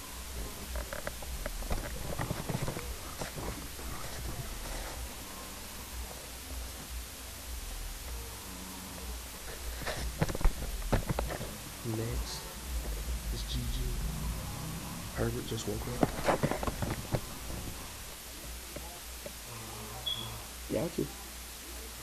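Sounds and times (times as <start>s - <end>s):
steady low hum: 0.0s - 22.0s.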